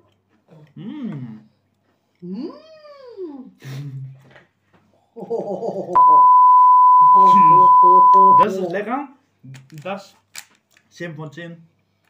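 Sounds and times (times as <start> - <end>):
test tone bleep: 6.0 - 8.5.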